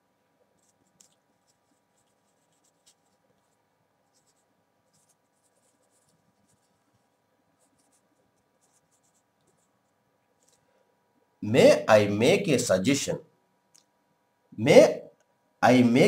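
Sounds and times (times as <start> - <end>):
marker writing on whiteboard: 0.4 - 10.6.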